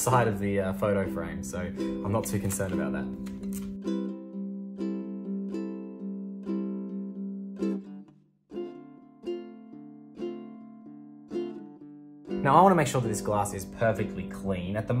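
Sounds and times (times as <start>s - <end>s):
plucked string instrument melody: 0.0s - 15.0s.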